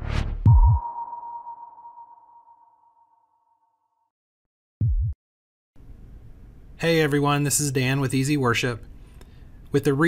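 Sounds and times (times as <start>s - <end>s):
high ringing tone: 0.5s - 3.7s.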